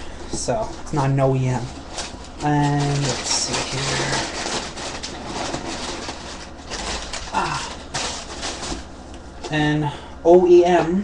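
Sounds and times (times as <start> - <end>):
packaging rustling and crinkling: 0.2 - 9.0.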